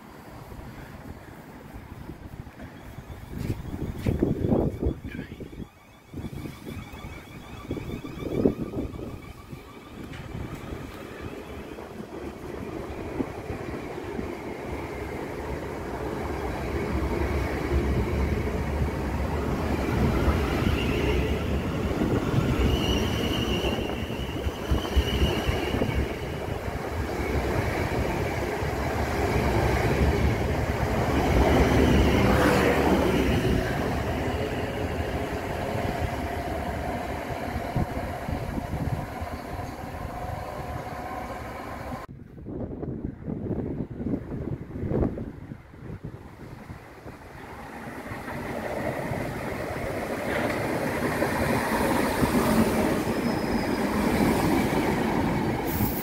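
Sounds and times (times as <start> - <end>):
approaching train running noise: 0.0 - 56.0
train wheels rumbling on rails: 0.0 - 56.0.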